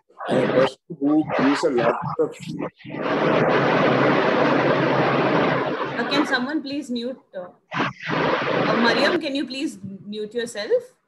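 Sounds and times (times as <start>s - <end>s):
person speaking: 0.0s - 2.7s, 6.0s - 7.5s, 8.7s - 10.1s
microphone rushing noise: 0.0s - 6.8s, 7.6s - 9.4s.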